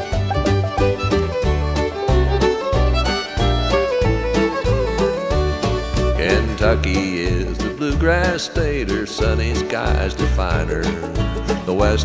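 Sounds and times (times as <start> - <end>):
alternating bass notes: 0.0 - 12.0
fiddle melody: 0.0 - 12.0.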